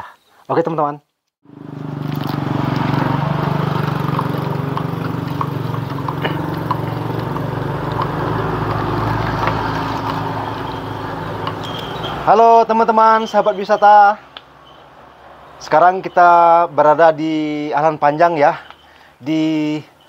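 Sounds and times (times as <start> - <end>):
vehicle engine humming: 1.4 - 20.0.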